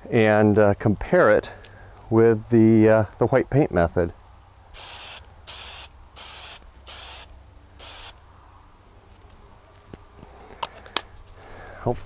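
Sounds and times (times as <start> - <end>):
aerosol can spraying: 4.8 - 8.2.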